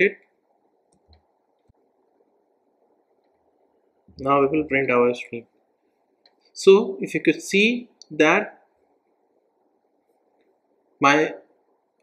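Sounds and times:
faint low hiss: 0:00.0 - 0:12.0.

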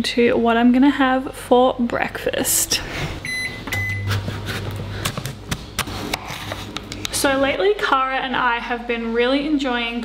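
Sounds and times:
appliance humming: 0:02.2 - 0:09.0
short electronic beeps: 0:03.2 - 0:04.1.

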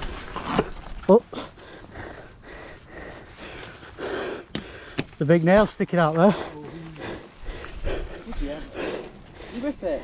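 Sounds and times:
breathy exhalations: 0:01.3 - 0:05.2, 0:06.2 - 0:09.8.

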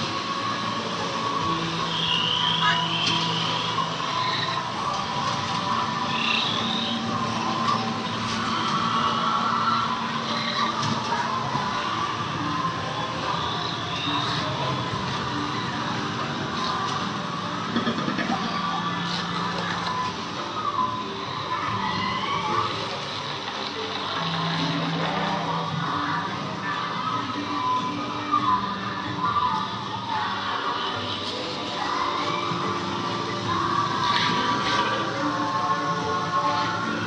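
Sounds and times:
rushing water: 0:00.0 - 0:27.6
soft ambient music: 0:00.0 - 0:37.0.

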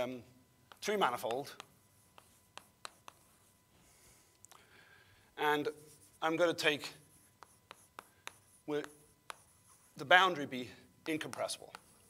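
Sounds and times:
chalk tapping on blackboard: 0:00.7 - 0:03.5, 0:07.1 - 0:10.1, 0:11.0 - 0:12.0.

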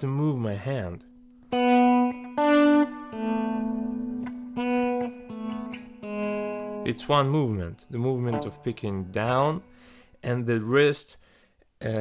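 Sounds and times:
clean electric guitar notes: 0:01.1 - 0:09.9.

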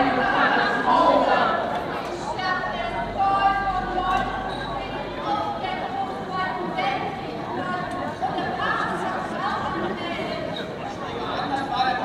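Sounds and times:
murmur of outdoor crowd: 0:00.0 - 0:12.0.

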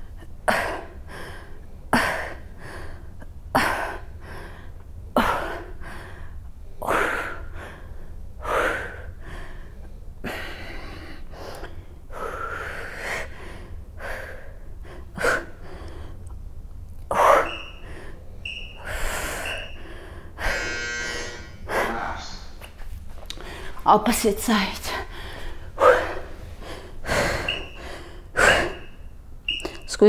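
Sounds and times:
woman breathing hard: 0:00.0 - 0:16.3, 0:17.1 - 0:22.6, 0:23.3 - 0:23.8, 0:24.8 - 0:29.1.

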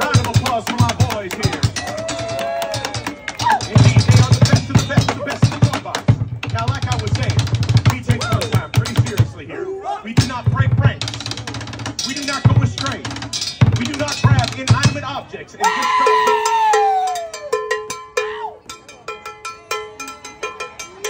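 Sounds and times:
drumsticks beating fast rhythm: 0:00.0 - 0:09.5, 0:10.2 - 0:21.0
crowd voices: 0:00.0 - 0:21.0.

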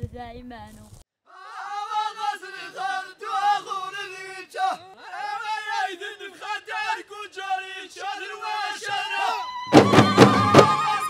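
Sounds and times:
group chanted singing: 0:01.3 - 0:11.0
frame drums struck in quick rhythm: 0:09.7 - 0:11.0.

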